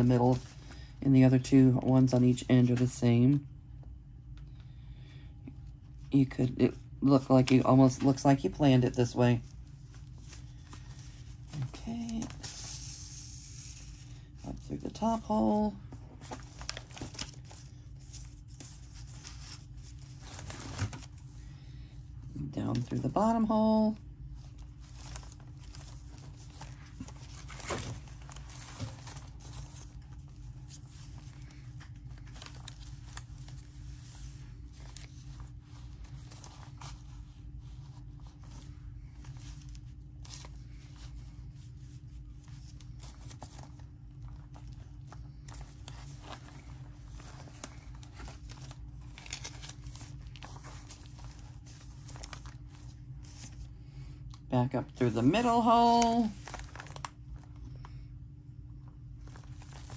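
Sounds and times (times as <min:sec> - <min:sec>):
paper rustling and crinkling: 0:00.0 - 0:03.0, 0:07.0 - 0:21.6, 0:22.2 - 0:54.4, 0:55.0 - 0:58.1, 0:58.8 - 0:59.9
steady low hum: 0:00.0 - 0:59.9.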